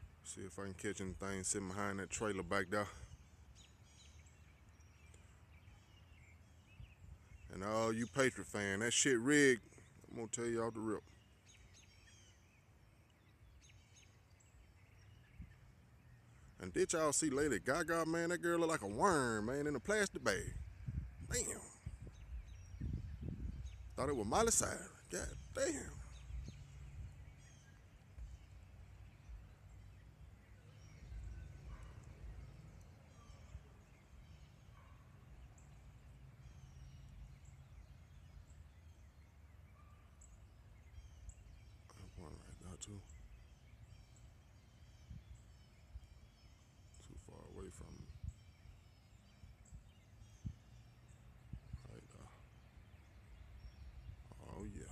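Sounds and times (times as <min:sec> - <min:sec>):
faint bird chirps: 0:00.0 - 0:54.9.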